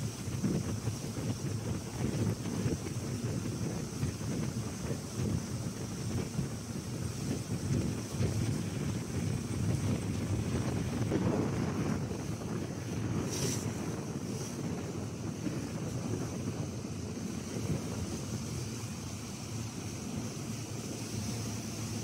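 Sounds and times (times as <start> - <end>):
water washing around boat: 0.0 - 22.0
wind buffeting microphone: 0.0 - 22.0.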